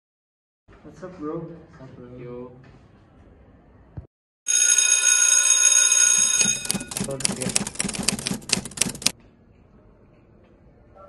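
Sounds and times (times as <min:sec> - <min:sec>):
school bell ringing: 0:04.5 - 0:07.3.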